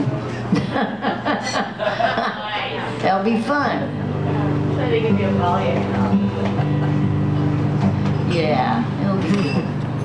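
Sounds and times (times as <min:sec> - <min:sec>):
acoustic guitar played softly: 0:02.7 - 0:10.0.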